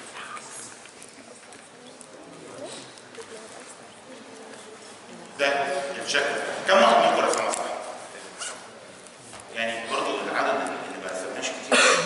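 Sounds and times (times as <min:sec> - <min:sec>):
man lecturing: 0:05.4 - 0:08.4, 0:09.4 - 0:12.0.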